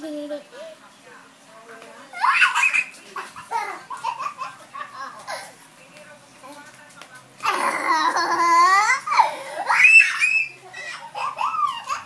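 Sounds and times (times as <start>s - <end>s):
children squealing and giggling: 2.2s - 4.6s, 7.6s - 12.0s.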